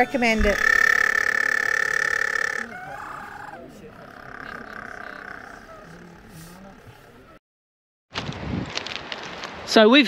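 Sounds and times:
penguins calling: 0:00.0 - 0:07.3.

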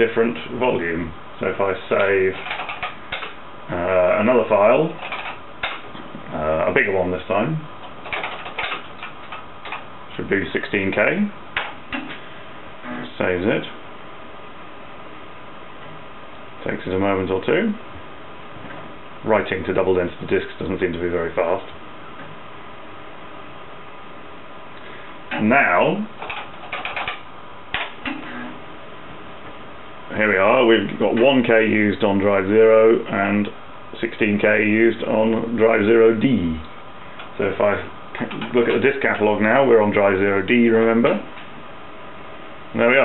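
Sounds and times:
keyboard keys clicking: 0:02.4 - 0:03.3, 0:05.0 - 0:05.8, 0:08.0 - 0:09.8, 0:26.2 - 0:27.9.

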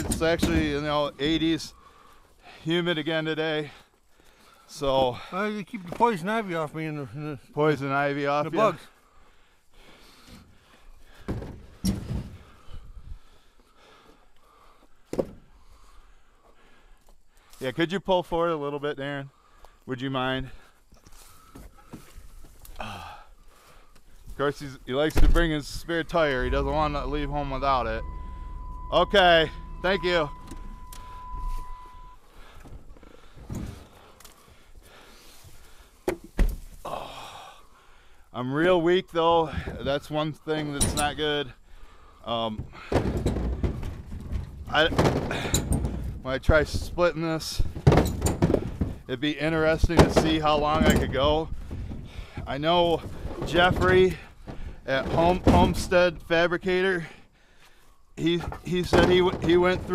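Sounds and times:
firewood knocking and thudding: 0:00.0 - 0:00.9, 0:11.1 - 0:12.6, 0:15.0 - 0:15.5, 0:36.0 - 0:36.8, 0:42.5 - 0:46.8, 0:47.6 - 0:49.1, 0:49.7 - 0:56.0, 0:58.2 - 0:59.9
steady electronic tone: 0:26.2 - 0:32.3.

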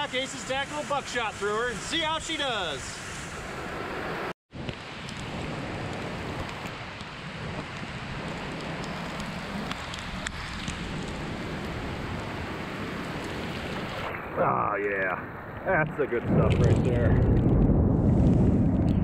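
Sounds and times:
heavy rain on puddle: 0:04.6 - 0:15.2, 0:16.2 - 0:19.0.

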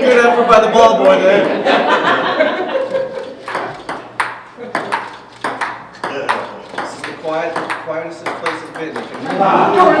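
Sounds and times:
ping-pong ball clicking: 0:02.9 - 0:09.4.

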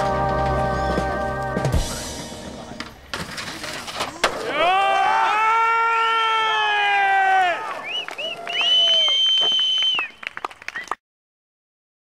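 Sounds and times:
higher shout: 0:04.4 - 0:07.8
friends yelling and cheering: 0:04.4 - 0:09.0
long drawn-out shout: 0:04.4 - 0:09.2.

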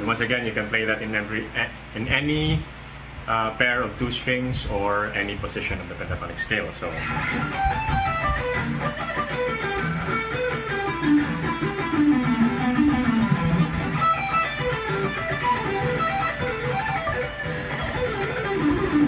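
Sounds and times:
electric guitar picked notes: 0:06.9 - 0:19.0.

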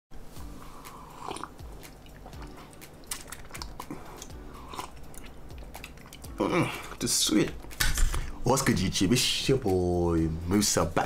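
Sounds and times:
small wet mouth clicks: 0:00.9 - 0:06.3
sipping and swallowing: 0:00.9 - 0:07.0.

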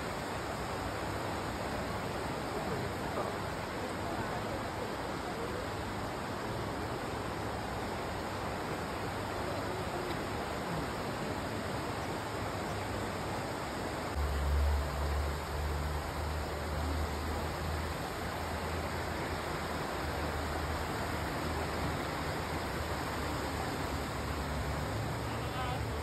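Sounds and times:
river rushing over stones: 0:00.0 - 0:26.0.

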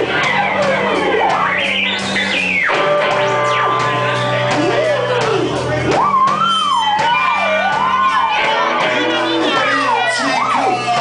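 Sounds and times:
crowd shouting and cheering: 0:00.0 - 0:11.0
live band music: 0:00.0 - 0:11.0
high voice singing: 0:07.6 - 0:11.0.

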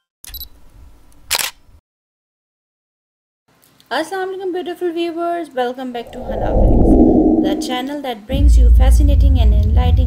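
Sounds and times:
low rumble: 0:06.1 - 0:07.9.

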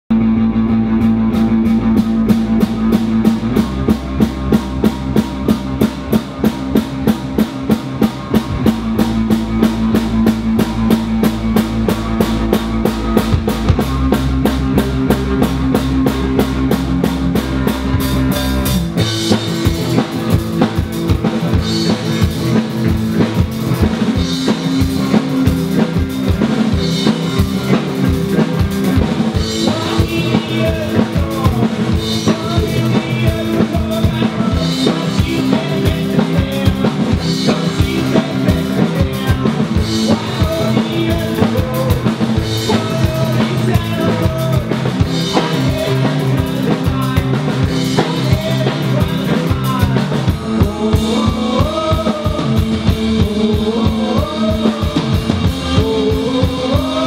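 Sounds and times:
live rock band playing: 0:00.1 - 0:57.0.

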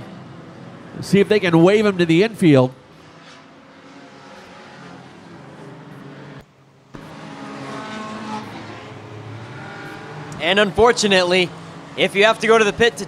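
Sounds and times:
race car engines: 0:00.0 - 0:13.0.

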